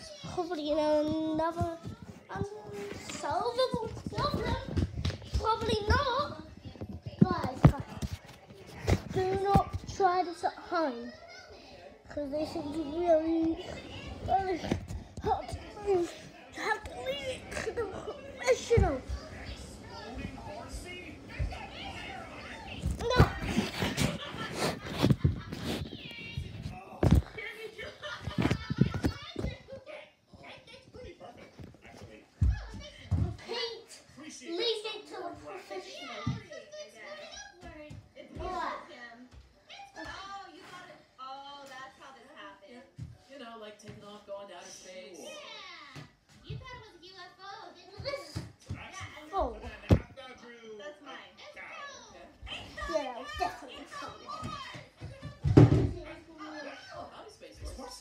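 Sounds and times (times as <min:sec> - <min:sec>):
children talking and playing: 0:00.0 - 0:58.0
children's voices: 0:08.8 - 0:20.5.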